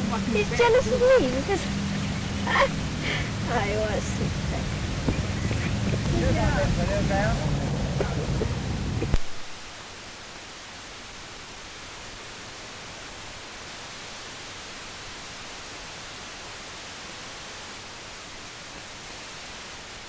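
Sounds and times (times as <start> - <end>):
steady film soundtrack hiss: 0.0 - 20.0.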